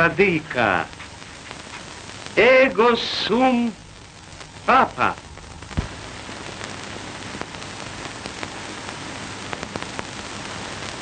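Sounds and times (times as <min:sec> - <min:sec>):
film soundtrack hiss and crackle: 0:00.0 - 0:11.0
clicks and pops: 0:05.4 - 0:08.5.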